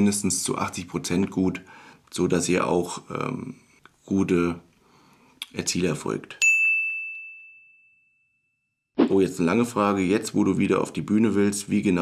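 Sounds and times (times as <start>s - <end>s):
bright ding: 6.4s - 8.8s.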